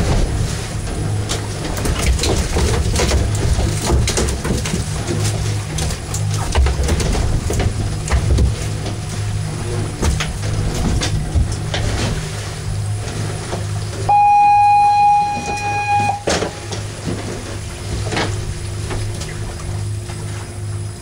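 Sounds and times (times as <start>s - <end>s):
boat engine droning: 0.0s - 21.0s.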